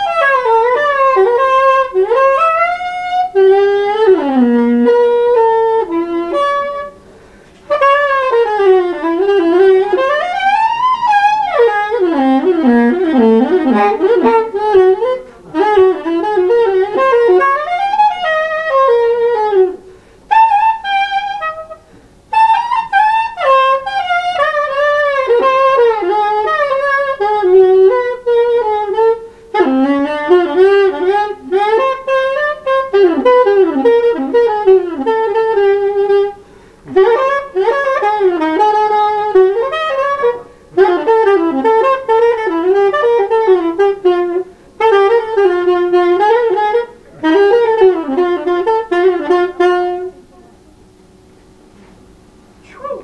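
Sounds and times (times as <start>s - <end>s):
solo saxophone jazz: 0.0s - 53.0s.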